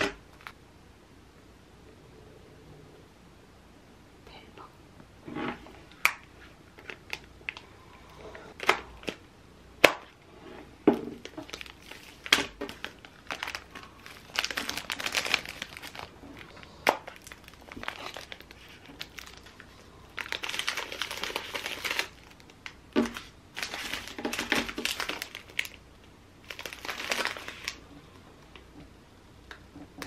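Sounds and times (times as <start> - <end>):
plastic bags crinkling: 6.0 - 7.7, 8.5 - 9.2, 11.1 - 25.8, 26.4 - 27.8.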